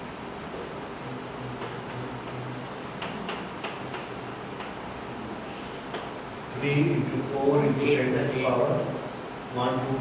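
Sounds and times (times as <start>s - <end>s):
chalk tapping on blackboard: 1.4s - 4.8s.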